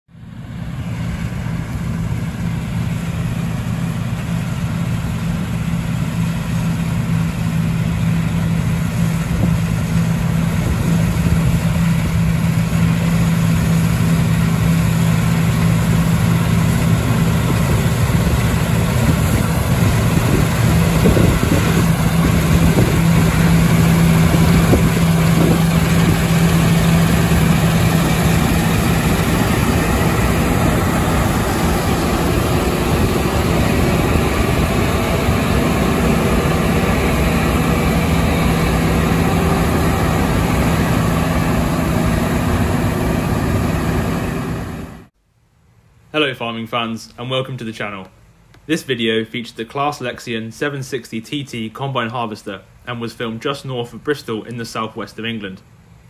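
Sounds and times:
diesel engine drone: 0.1s - 45.2s
combine harvester threshing: 0.3s - 45.1s.

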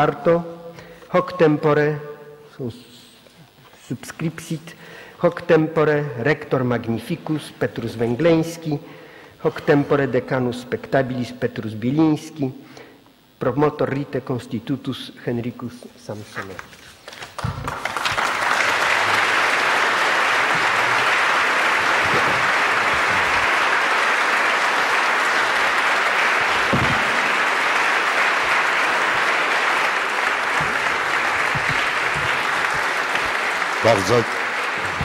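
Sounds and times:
audience applauding: 17.0s - 35.0s.

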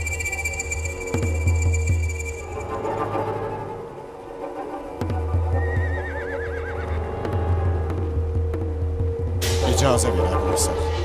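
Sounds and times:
film score music with drone: 0.0s - 11.0s
horse whinnying: 5.6s - 7.2s.

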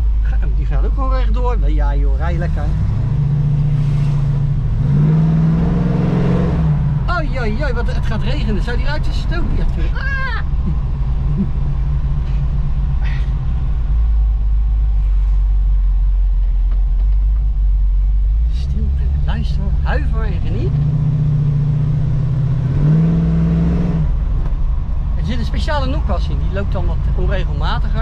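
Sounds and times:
car engine revving inside cabin: 2.1s - 28.0s.

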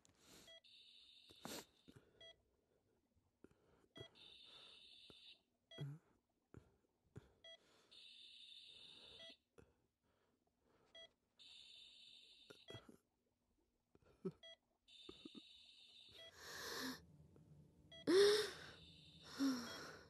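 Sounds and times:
patient monitor beeps: 7.4s - 9.4s, 14.3s - 17.0s, 17.9s - 20.0s.

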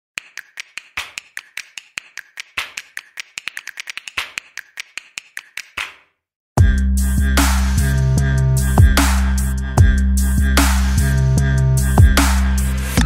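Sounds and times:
rapid sharp dry clicks: 0.2s - 5.9s.

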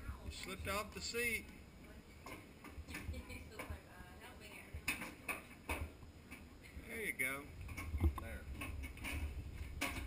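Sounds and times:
clicks and knocks of toy truck: 7.7s - 10.0s.

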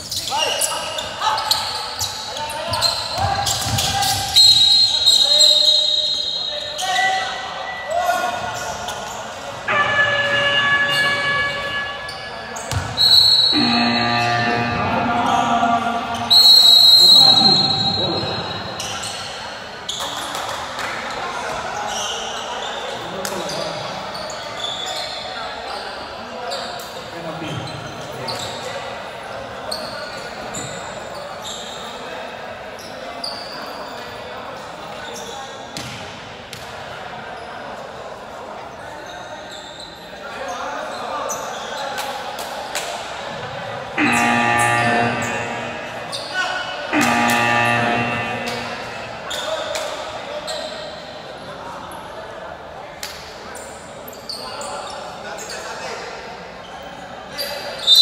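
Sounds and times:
referee's whistle: 2.7s - 7.0s, 9.7s - 19.2s, 44.0s - 49.9s, 57.8s - 58.0s
people shouting in a hall: 9.6s - 19.1s, 43.2s - 50.4s.

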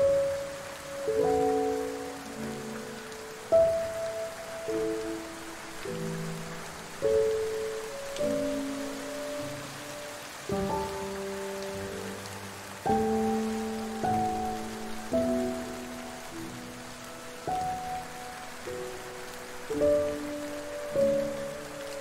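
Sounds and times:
soft slow piano music: 0.0s - 22.0s
steady rain: 0.0s - 22.0s.

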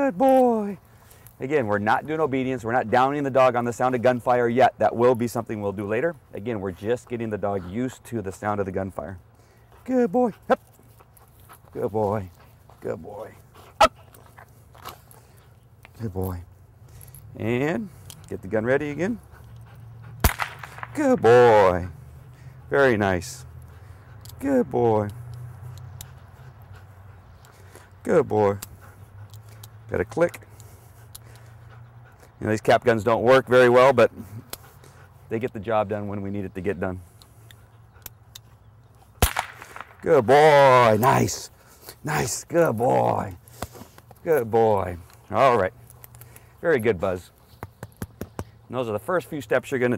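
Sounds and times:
light scuffs and clicks: 0.1s - 21.0s, 21.6s - 49.9s
cap gun bang: 20.2s - 21.0s, 39.2s - 39.9s.

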